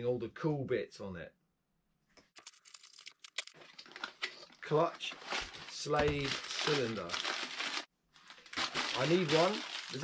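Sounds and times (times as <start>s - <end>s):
packing paper crinkling: 2.4s - 10.0s.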